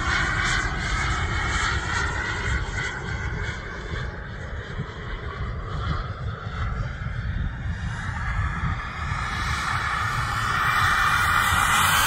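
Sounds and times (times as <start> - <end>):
model jet engine whine: 0.0 - 12.0
wind rumble on microphone: 0.0 - 12.0.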